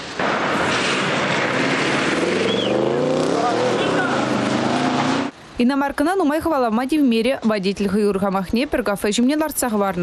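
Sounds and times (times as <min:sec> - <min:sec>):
tyres hissing on wet road: 0:00.0 - 0:05.4
car engine accelerating: 0:00.6 - 0:05.3.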